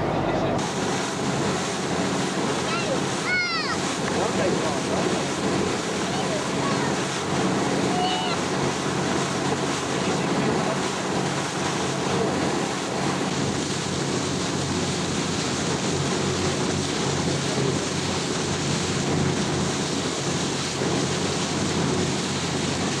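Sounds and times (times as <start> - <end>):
ferry engines droning: 0.0 - 17.7
water rushing along hull: 0.0 - 23.0
wind buffeting microphone: 0.0 - 23.0.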